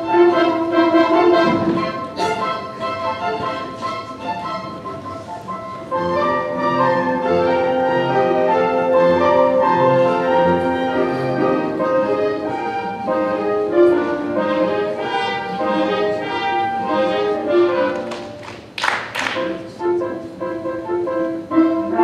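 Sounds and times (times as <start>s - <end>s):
orchestra playing dance music: 0.0s - 18.4s.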